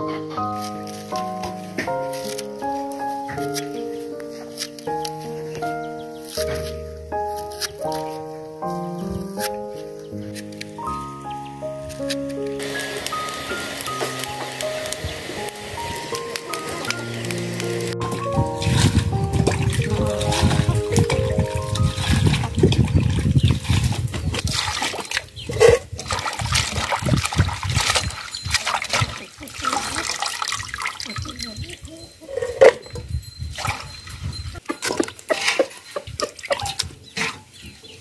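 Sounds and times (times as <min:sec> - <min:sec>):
background music with stepping melody: 0:00.0 - 0:24.4
water sloshing and splashing: 0:12.5 - 0:32.0, 0:33.5 - 0:37.5.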